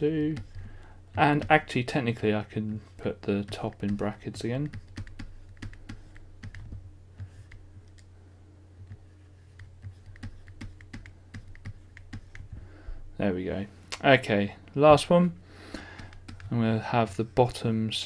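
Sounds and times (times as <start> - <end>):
low electrical hum: 0.0 - 18.0
stylus tapping on tablet: 9.6 - 12.5.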